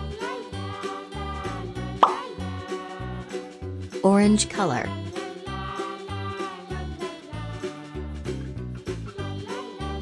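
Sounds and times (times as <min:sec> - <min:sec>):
light children's music: 0:00.0 - 0:10.0
short plop sound effect: 0:02.0 - 0:02.3.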